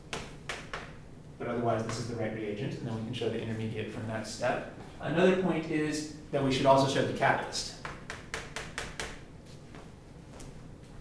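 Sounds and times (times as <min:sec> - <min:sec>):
chalk tapping on chalkboard: 0:00.1 - 0:01.0, 0:07.7 - 0:09.2.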